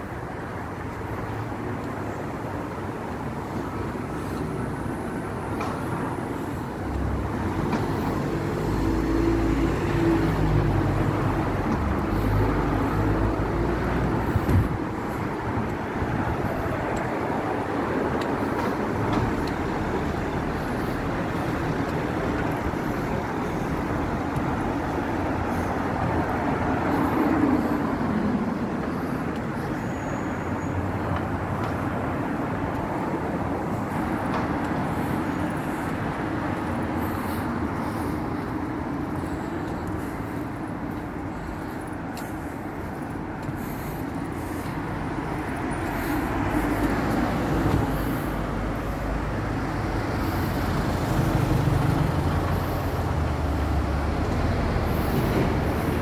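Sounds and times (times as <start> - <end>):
road traffic on wet tarmac: 0.0 - 56.0
heavy vehicle rumbling past: 44.8 - 56.0.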